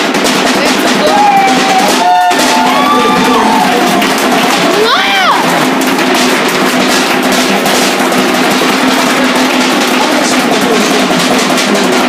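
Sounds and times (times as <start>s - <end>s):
crowd voices: 0.0s - 12.0s
loud fast drumming: 0.0s - 12.0s
person whooping: 1.0s - 5.5s.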